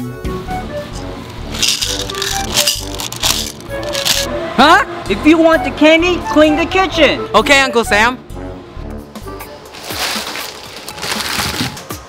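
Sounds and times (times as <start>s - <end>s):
background music: 0.0s - 12.0s
candies rattling into plastic cup: 1.4s - 4.3s, 9.8s - 11.9s.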